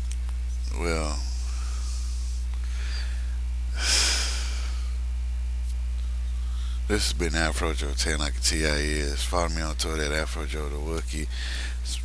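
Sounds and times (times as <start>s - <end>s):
electrical mains hum: 0.0s - 12.0s
man's sharp breath: 1.4s - 5.0s, 11.3s - 11.8s.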